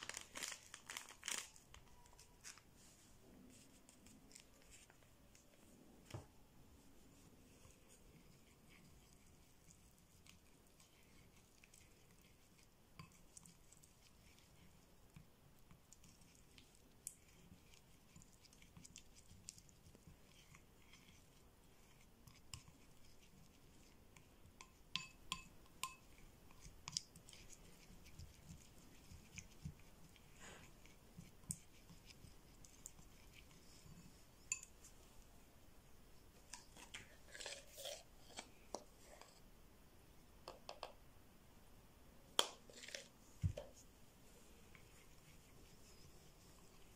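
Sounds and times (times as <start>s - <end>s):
plastic spoon stirring paste: 0.9s - 35.4s, 36.0s - 39.5s, 40.4s - 41.0s, 42.3s - 46.9s.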